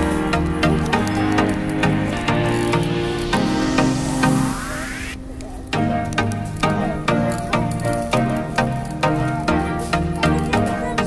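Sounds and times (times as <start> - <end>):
rising sweep: 0.0 - 7.0
background music with steady beat: 0.0 - 11.0.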